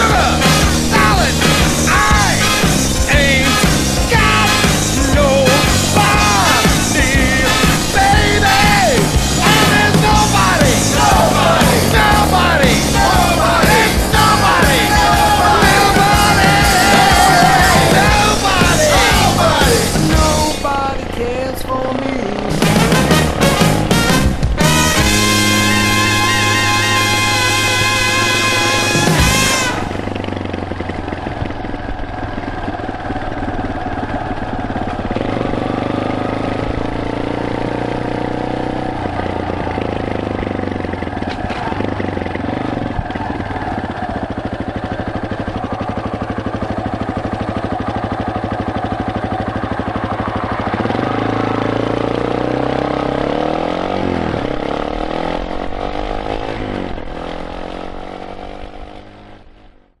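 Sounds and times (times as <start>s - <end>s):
motorcycle engine running: 0.0s - 60.0s.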